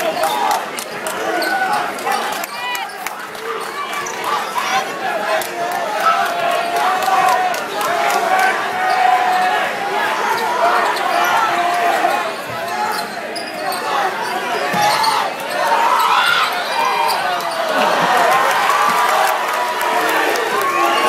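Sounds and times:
crowd talking and shouting: 0:00.0 - 0:21.0.

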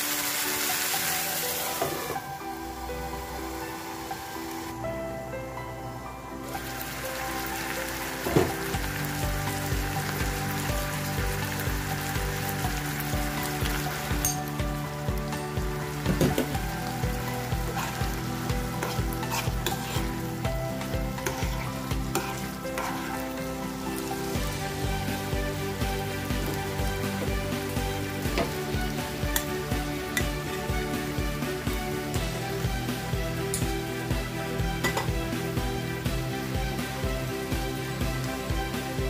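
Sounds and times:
food sizzling in a pan: 0:00.0 - 0:04.8, 0:06.4 - 0:39.0
background music with steady beat: 0:00.0 - 0:39.0
spatula stirring: 0:16.1 - 0:25.4.

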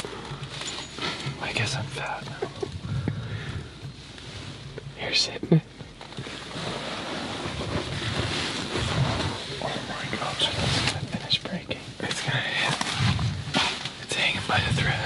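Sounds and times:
man talking: 0:01.4 - 0:02.5, 0:05.0 - 0:05.7, 0:09.5 - 0:12.8, 0:14.0 - 0:15.0.

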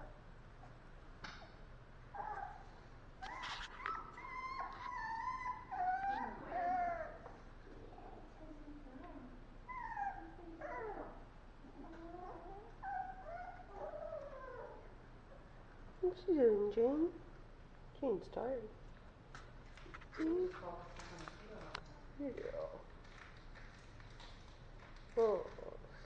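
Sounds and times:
puppy whimpering and whining: 0:02.1 - 0:08.2, 0:09.7 - 0:15.0.

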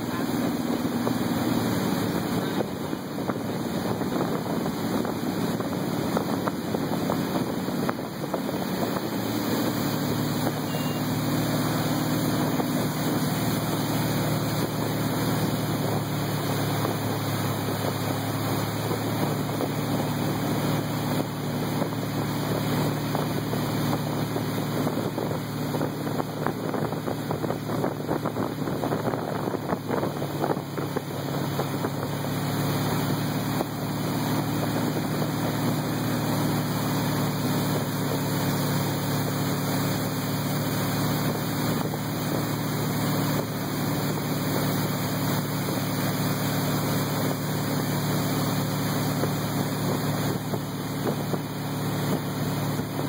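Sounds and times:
boat motor running: 0:00.0 - 0:53.0
water rushing: 0:00.0 - 0:53.0
wind buffeting microphone: 0:00.2 - 0:10.6, 0:14.4 - 0:53.0.

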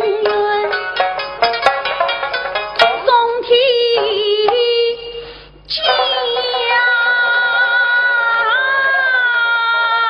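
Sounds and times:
woman singing long notes: 0:05.7 - 0:10.0.

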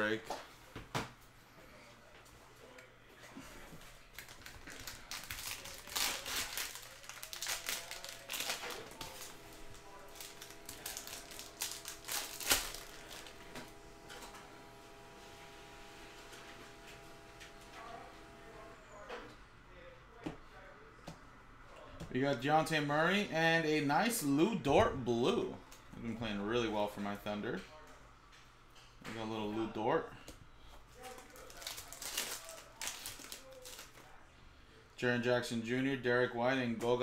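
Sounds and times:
plastic wrapper crinkling and tearing: 0:03.9 - 0:14.2, 0:31.0 - 0:34.1.

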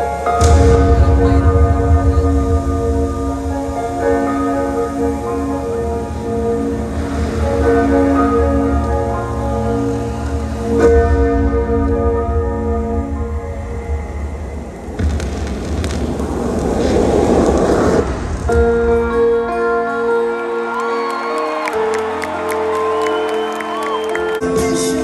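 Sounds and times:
loud live concert music: 0:00.0 - 0:25.0
crowd cheering: 0:19.4 - 0:24.7.

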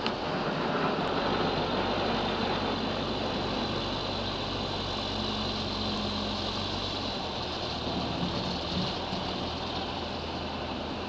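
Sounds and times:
diesel engine running: 0:00.0 - 0:11.0.

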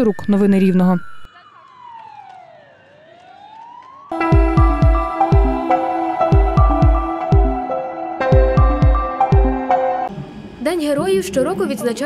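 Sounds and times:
faint siren wailing: 0:00.0 - 0:11.8.

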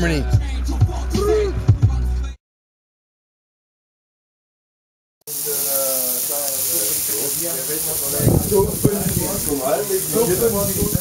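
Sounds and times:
meat sizzling on a grill: 0:05.3 - 0:11.0.

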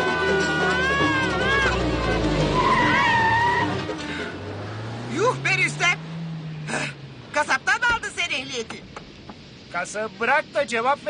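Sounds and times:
tyre screech: 0:00.0 - 0:04.4
background music: 0:00.0 - 0:07.7
car engine rumble: 0:00.0 - 0:11.0.

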